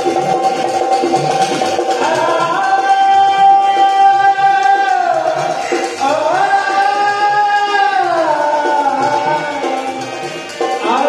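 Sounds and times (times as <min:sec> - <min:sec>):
dholak drum strokes: 0:00.0 - 0:11.0
harmonium high note: 0:00.0 - 0:11.0
quick repeating melody: 0:00.0 - 0:11.0.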